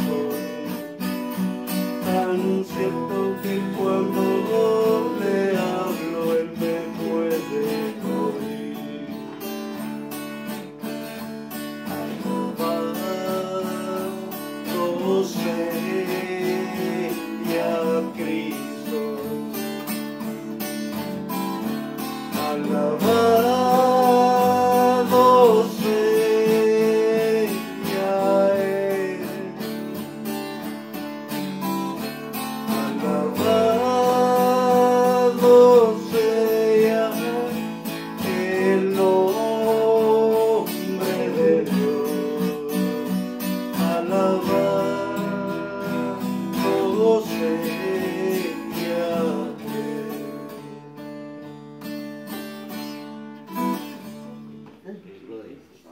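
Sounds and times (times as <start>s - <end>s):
man singing: 0.0s - 9.8s, 11.8s - 20.3s, 21.6s - 30.4s, 31.9s - 50.8s
acoustic guitar strumming: 0.0s - 55.1s.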